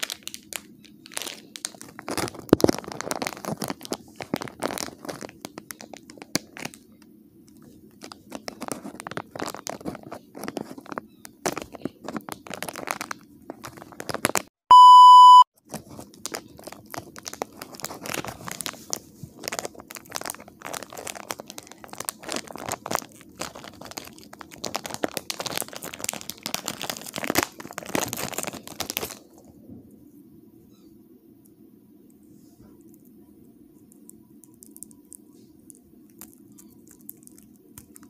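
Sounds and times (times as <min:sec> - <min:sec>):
foil packet crinkling and tearing: 0:00.0 - 0:14.5, 0:15.6 - 0:29.5, 0:34.4 - 0:38.0
loud single-pitched beep: 0:14.7 - 0:15.4.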